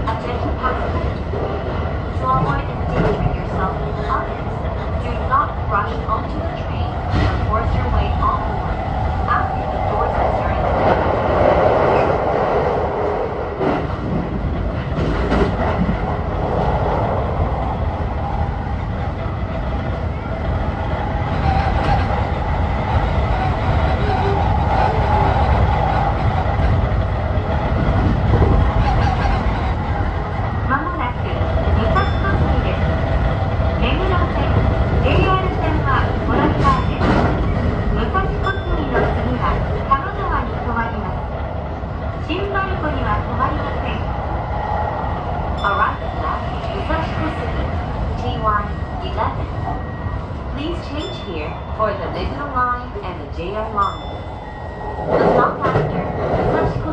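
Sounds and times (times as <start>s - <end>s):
wheels rumbling on rails: 0.0s - 56.9s.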